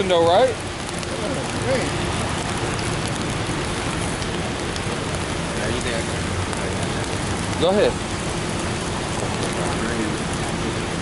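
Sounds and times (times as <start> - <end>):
raindrops striking umbrellas: 0.0 - 11.0
steady rain falling: 0.0 - 11.0.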